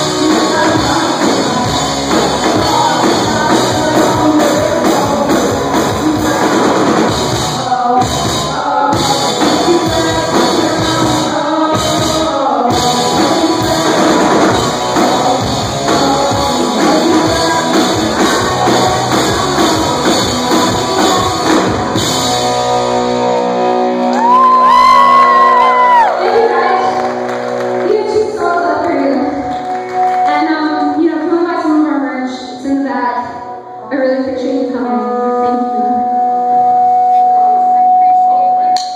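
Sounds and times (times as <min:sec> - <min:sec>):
woman singing: 0:00.0 - 0:22.0, 0:30.2 - 0:36.4
bass guitar: 0:00.0 - 0:38.9
drums: 0:00.0 - 0:38.9
electric guitar: 0:00.0 - 0:38.9.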